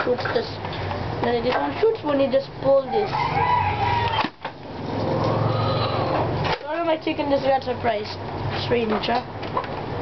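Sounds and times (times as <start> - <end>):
chicken squawking: 2.8 - 4.3, 5.0 - 6.3.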